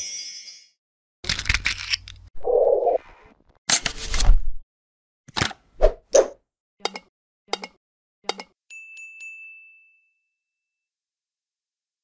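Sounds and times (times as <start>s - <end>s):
high bell-like ding: 8.7s - 10.9s.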